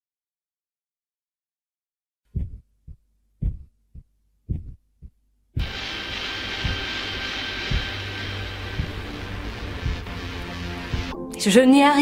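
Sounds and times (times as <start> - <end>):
heartbeat thumps: 2.3 - 5.9, 6.5 - 6.9, 7.6 - 11.2
faint beats: 2.3 - 11.2
droning music bed: 5.6 - 11.3.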